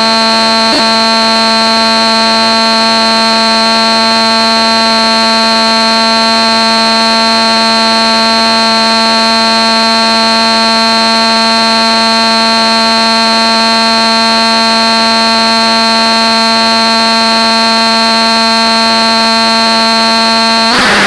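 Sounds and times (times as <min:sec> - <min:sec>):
electronic buzzing drone: 0:00.0 - 0:21.0
harsh rushing noise: 0:20.6 - 0:21.0.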